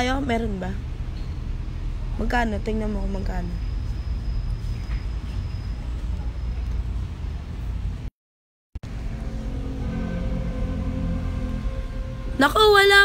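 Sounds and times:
low background rumble: 8.8s - 13.0s.

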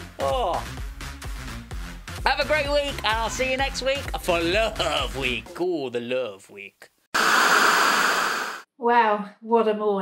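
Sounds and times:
loud hissing noise: 7.2s - 8.6s.

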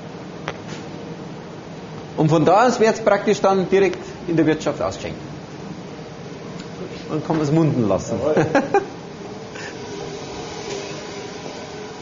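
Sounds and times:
fan whooshing: 0.0s - 12.0s.

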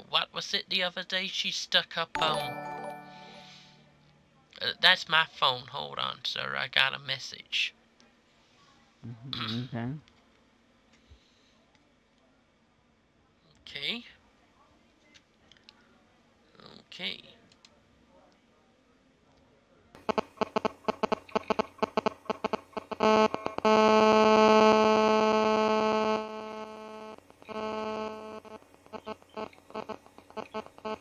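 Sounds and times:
choppy phone call audio: 2.2s - 3.8s, 20.0s - 31.0s
electronic buzzing tone: 20.0s - 31.0s.

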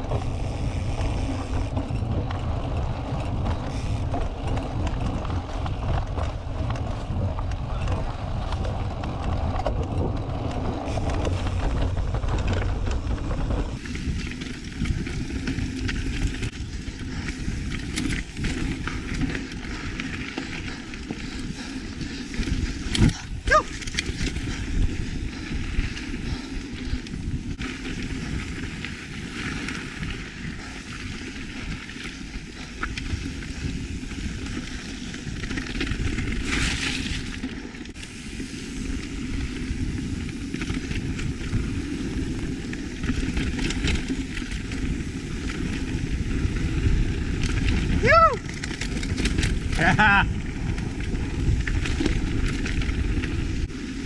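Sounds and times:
bike rattling: 0.0s - 54.0s
tyres rumbling on dirt: 0.0s - 54.0s.

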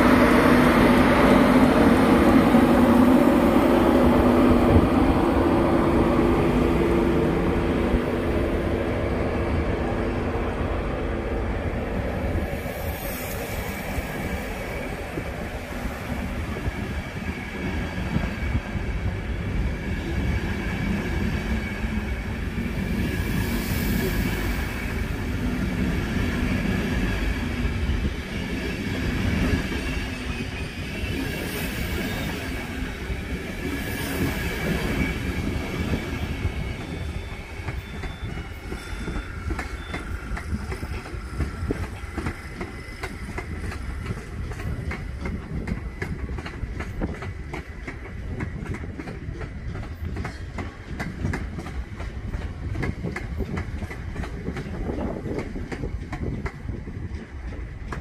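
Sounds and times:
express train passing: 0.0s - 58.0s
train wheels clicking over rail joints: 36.7s - 58.0s.

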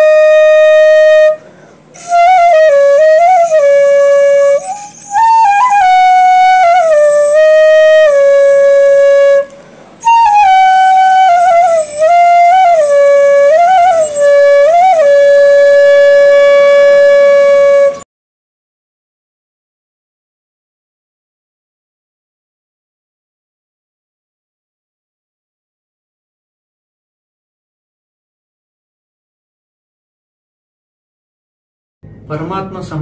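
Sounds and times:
flute long held note: 0.0s - 18.1s.

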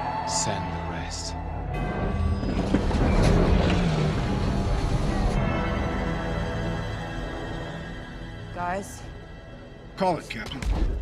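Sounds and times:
orchestral score: 0.0s - 10.7s.

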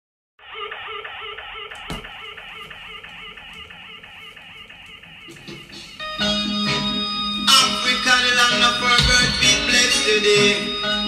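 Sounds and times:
reggae record playing: 0.4s - 11.0s.

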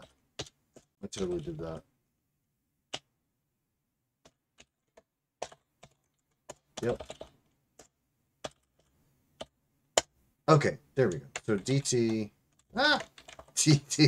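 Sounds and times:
computer keyboard keystrokes: 0.0s - 1.8s, 4.2s - 10.1s, 11.0s - 13.6s.

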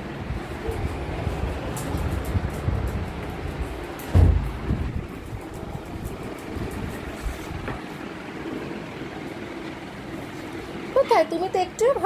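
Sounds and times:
heavy bump: 1.8s - 7.8s.

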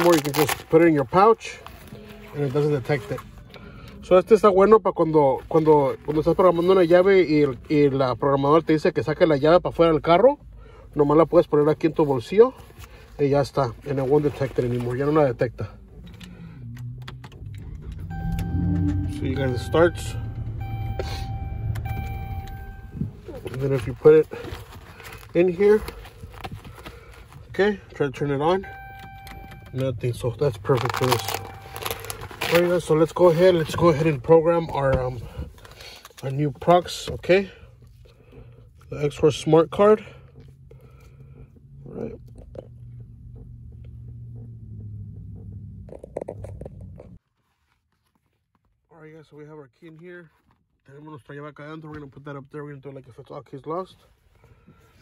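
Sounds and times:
car engine cranking and starting: 13.8s - 47.2s
handling rustles: 20.9s - 28.1s, 28.9s - 38.1s.

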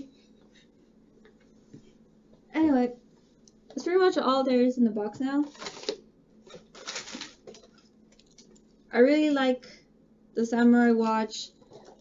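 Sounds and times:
faint rustling and handling: 5.2s - 8.9s.

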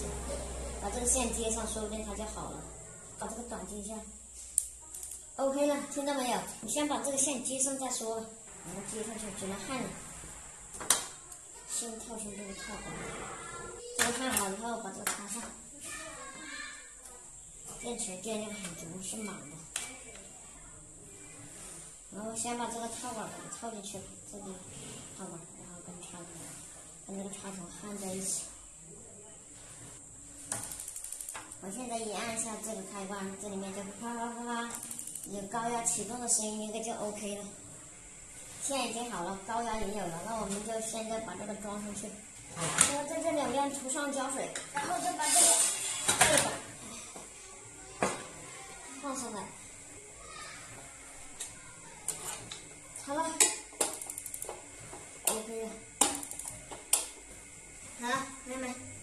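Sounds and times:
gas stove igniter clicking: 55.2s - 57.1s.

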